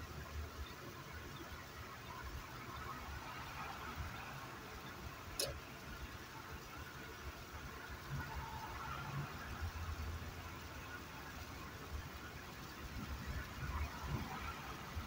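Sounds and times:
car engine and tyre rumble: 0.0s - 15.0s
sharp click: 5.4s - 5.6s.

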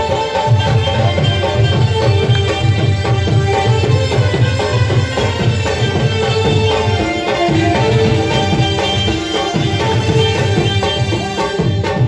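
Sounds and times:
band playing dance music: 0.0s - 12.0s
fast hand-drum rhythm: 0.0s - 12.0s.

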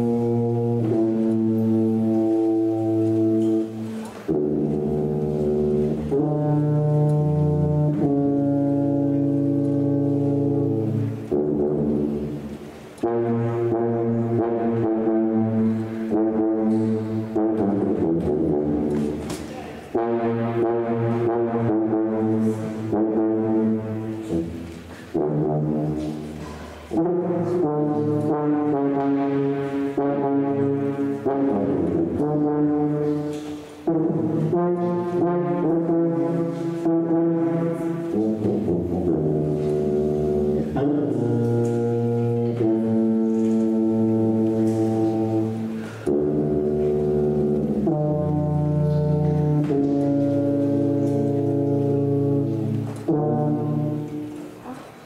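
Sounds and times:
sousaphones playing low notes: 0.0s - 19.2s, 19.9s - 54.8s.

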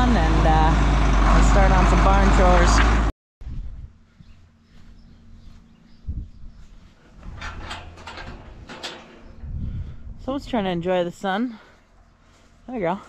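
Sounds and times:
low rumble: 0.0s - 12.6s.

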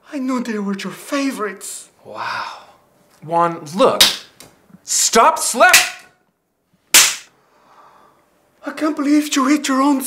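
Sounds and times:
hand slapping a face: 4.0s - 4.6s, 6.9s - 7.3s.

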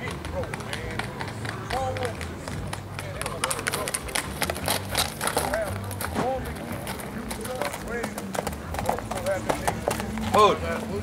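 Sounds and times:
horse hooves clopping on dirt: 0.0s - 11.0s.

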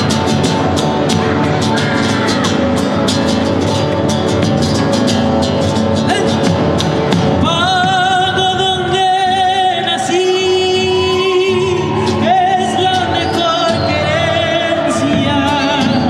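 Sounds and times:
guitar strummed: 0.0s - 16.0s
person singing with vibrato: 7.3s - 16.0s.

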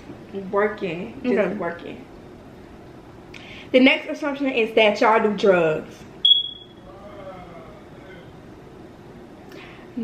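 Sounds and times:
high-pitched beep: 6.2s - 6.8s
faint voice: 6.8s - 8.4s.

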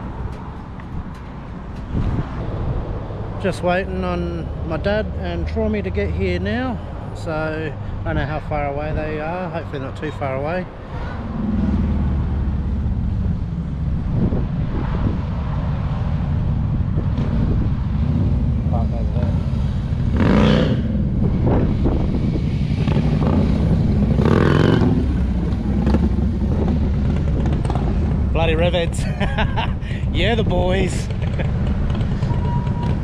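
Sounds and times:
motorcycle engines rumbling: 0.0s - 33.0s.

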